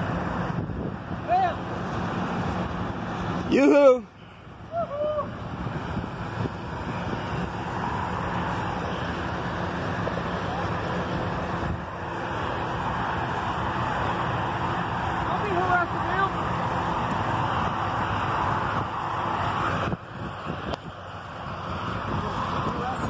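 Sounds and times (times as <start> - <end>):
road traffic: 0.0 - 23.0.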